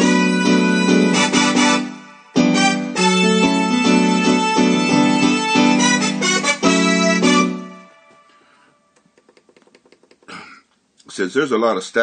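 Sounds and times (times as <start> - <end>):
piano chord stabs: 0.0 - 8.1.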